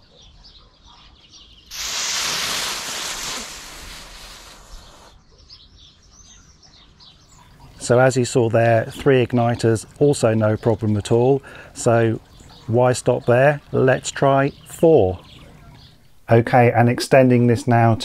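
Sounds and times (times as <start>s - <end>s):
birds chirping: 0.0s - 18.0s
fuse hissing fizz: 1.7s - 5.2s.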